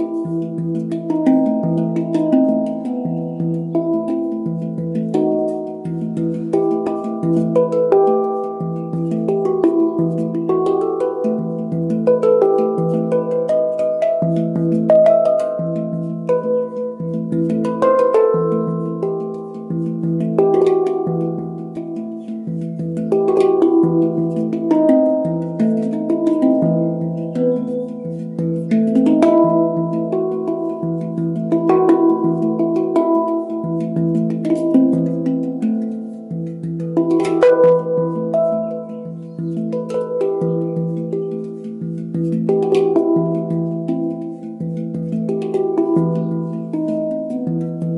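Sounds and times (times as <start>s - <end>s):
handpan melody: 0.0s - 47.9s.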